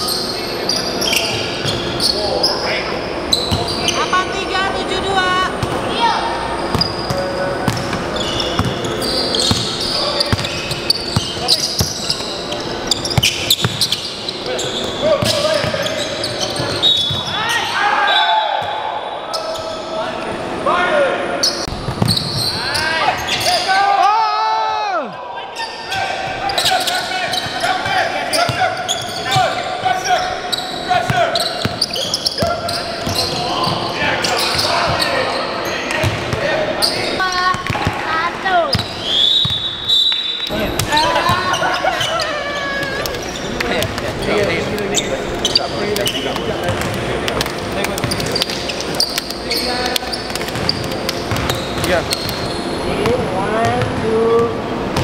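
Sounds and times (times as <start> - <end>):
sneaker squeaks: 0.0 - 4.3, 6.6 - 19.9, 21.4 - 23.7, 25.5 - 55.0
indistinct voices echoing: 0.0 - 55.0.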